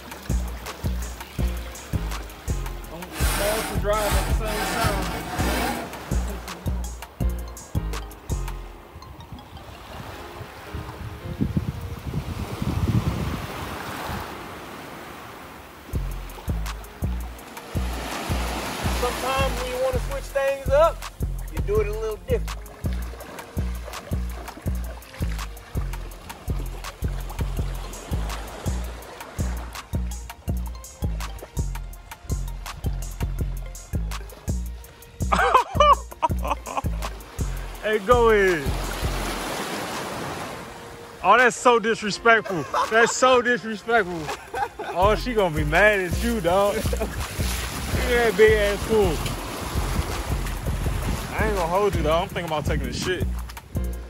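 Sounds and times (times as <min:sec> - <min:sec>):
bass-heavy background music: 0:00.0 - 0:13.3, 0:15.9 - 0:54.0
water rushing and splashing: 0:00.0 - 0:54.0
person speaking: 0:02.9 - 0:06.5, 0:37.8 - 0:38.8
wind buffeting microphone: 0:08.9 - 0:14.6, 0:44.3 - 0:53.9.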